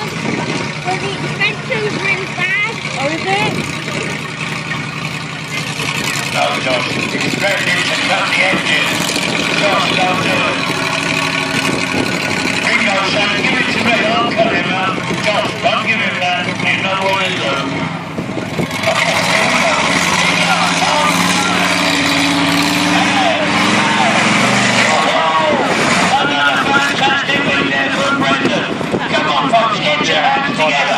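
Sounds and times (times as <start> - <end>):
people talking: 0.0 - 4.8, 5.5 - 10.7, 12.6 - 17.8, 18.8 - 30.9
monster truck engine running: 0.0 - 30.9.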